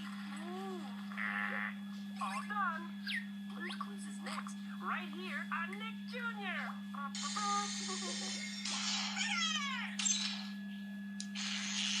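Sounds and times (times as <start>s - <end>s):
steady low hum: 0.0s - 12.0s
squeaky cartoon voices: 1.2s - 3.9s, 7.2s - 10.2s.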